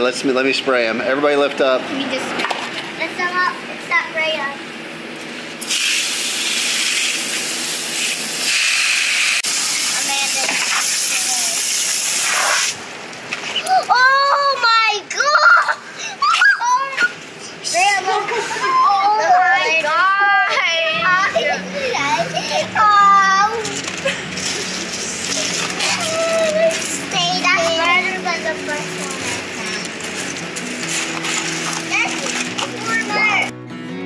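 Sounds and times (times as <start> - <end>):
hose nozzle spray hissing: 5.6 - 12.8
children's excited voices: 13.6 - 24.1, 25.3 - 29.9, 31.9 - 33.5.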